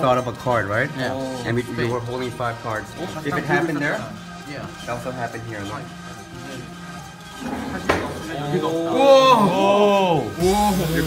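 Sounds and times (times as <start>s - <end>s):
music with sustained tones: 0.0s - 11.0s.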